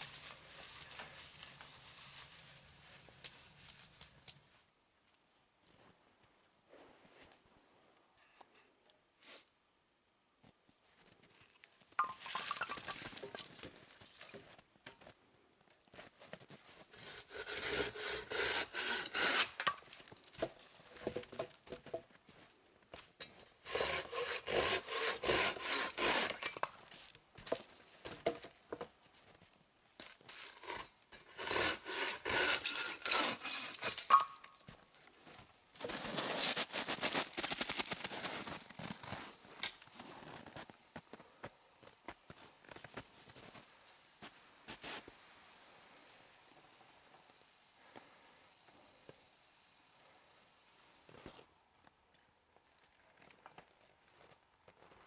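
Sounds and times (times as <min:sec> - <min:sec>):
pruning saw cutting branch: 0:16.9 - 0:19.8, 0:23.6 - 0:26.7, 0:30.3 - 0:34.3.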